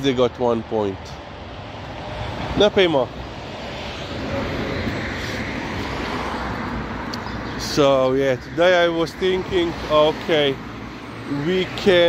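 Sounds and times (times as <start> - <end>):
passing car tyre and engine noise: 1.0 - 12.0.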